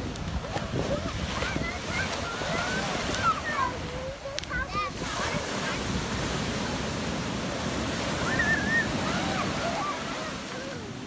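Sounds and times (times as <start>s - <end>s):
ocean surf washing over sand: 0.0s - 11.0s
child calling out: 8.2s - 11.0s.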